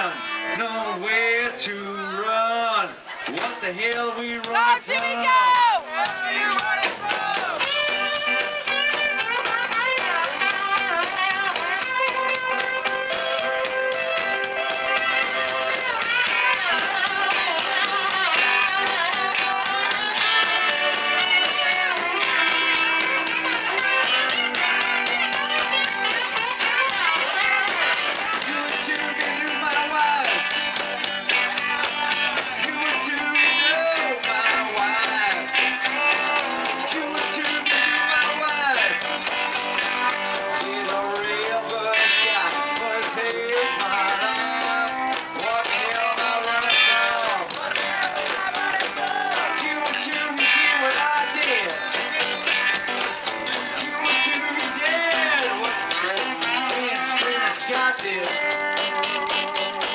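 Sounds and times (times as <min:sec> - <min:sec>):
live rock band playing: 0:03.3 - 0:59.9
electric guitar lead with pitch bends: 0:07.5 - 0:59.9.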